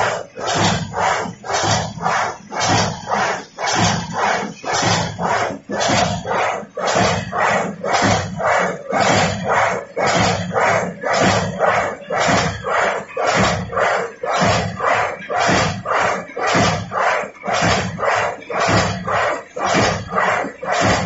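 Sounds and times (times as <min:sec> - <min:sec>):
machine running in rhythmic pulses: 0:00.0 - 0:21.0.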